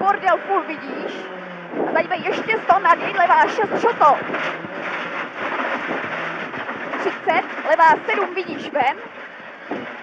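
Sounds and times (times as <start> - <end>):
car engine under load: 0.0 - 10.0.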